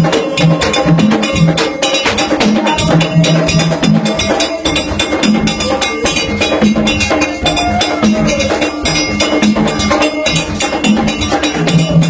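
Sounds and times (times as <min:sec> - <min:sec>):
drums: 0:00.0 - 0:12.0
metal bell strikes: 0:00.0 - 0:12.0.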